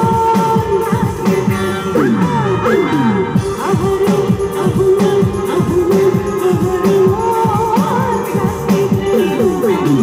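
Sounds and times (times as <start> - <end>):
amplified live band music: 0.0 - 10.0.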